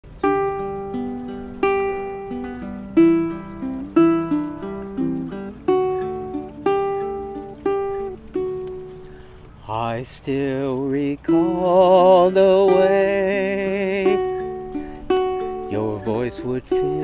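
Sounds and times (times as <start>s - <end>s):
ukulele plucking: 0.0s - 17.0s.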